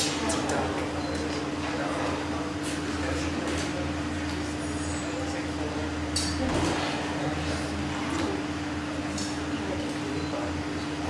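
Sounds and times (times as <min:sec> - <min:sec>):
low equipment hum: 0:00.0 - 0:11.0.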